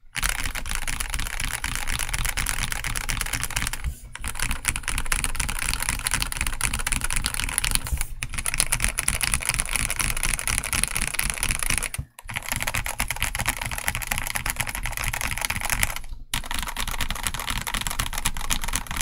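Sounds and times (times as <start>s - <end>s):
fast mechanical keyboard typing: 0.1s - 19.0s.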